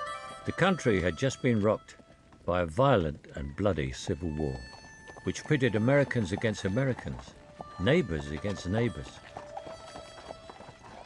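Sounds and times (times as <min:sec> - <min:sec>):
horse hooves clip-clopping: 0:00.5 - 0:11.0.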